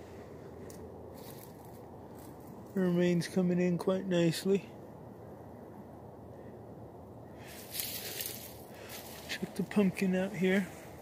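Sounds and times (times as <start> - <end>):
footsteps crunching on dry stalks: 0.5 - 2.8, 7.5 - 11.0.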